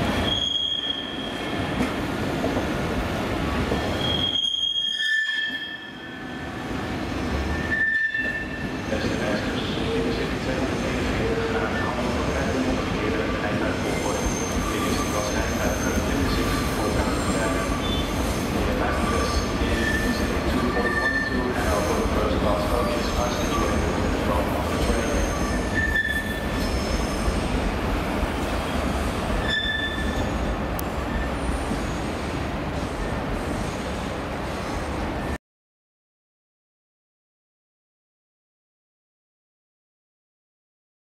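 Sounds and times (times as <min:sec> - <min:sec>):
train wheels squealing: 0:00.2 - 0:01.6, 0:03.7 - 0:06.5, 0:07.5 - 0:10.1, 0:13.8 - 0:23.9, 0:24.7 - 0:27.4, 0:29.4 - 0:32.1.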